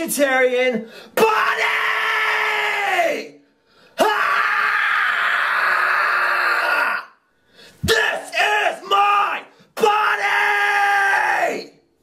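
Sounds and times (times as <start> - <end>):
man screaming: 1.2 - 3.3, 4.0 - 7.2, 7.8 - 11.8.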